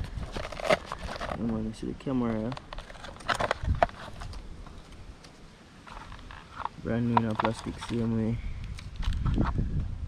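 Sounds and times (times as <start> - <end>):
plastic packaging rustle: 0.0 - 1.5, 2.5 - 8.1.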